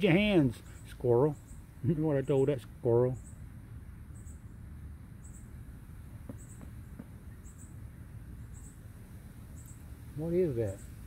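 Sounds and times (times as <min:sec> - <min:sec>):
cricket chirping: 0:00.0 - 0:11.0
low outdoor rumble: 0:00.0 - 0:11.0.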